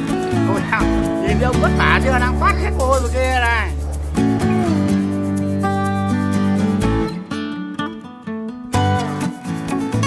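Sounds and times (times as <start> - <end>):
guitar: 0.0 - 10.0.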